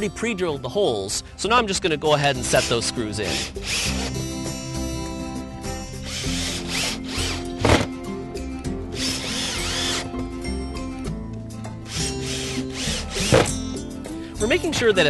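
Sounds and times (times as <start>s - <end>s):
background music: 0.0s - 15.0s
cordless drill driving screws: 2.5s - 4.2s, 6.0s - 7.9s, 8.9s - 10.1s, 11.9s - 13.6s.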